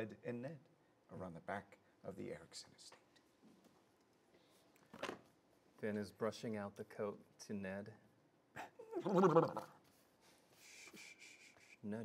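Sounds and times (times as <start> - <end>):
person imitating a horse: 8.6 - 9.8.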